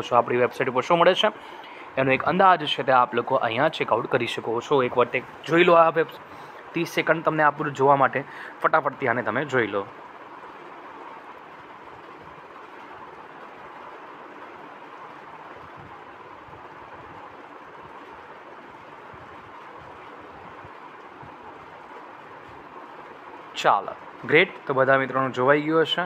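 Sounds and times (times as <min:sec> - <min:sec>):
steady background hiss: 0:00.0 - 0:26.0.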